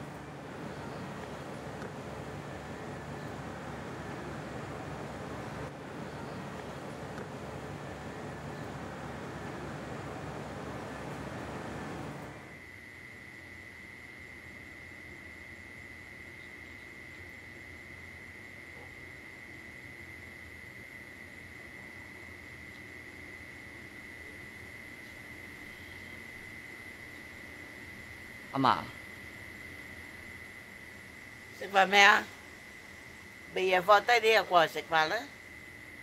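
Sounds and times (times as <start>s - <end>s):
steady rushing noise: 0.0s - 12.6s
crickets trilling: 0.0s - 36.0s.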